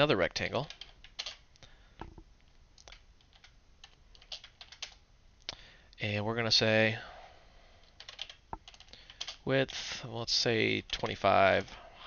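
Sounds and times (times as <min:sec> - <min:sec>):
faint keyboard typing: 0:00.6 - 0:02.2, 0:02.8 - 0:05.0, 0:07.8 - 0:09.8, 0:10.8 - 0:11.8.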